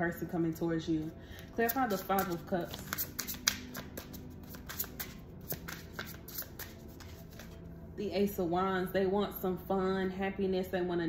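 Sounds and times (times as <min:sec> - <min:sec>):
cards being shuffled: 0:01.4 - 0:07.6.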